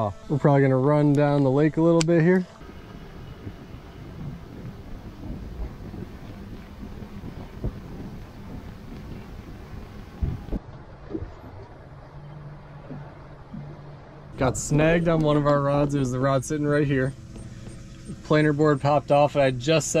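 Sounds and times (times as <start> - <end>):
outboard motor and water noise: 2.4 - 20.0
low hum: 2.5 - 20.0
wind buffeting microphone: 2.6 - 12.2.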